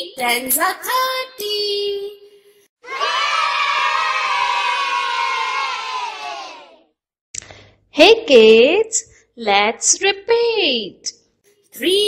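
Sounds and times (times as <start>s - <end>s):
children cheering: 2.8s - 6.9s.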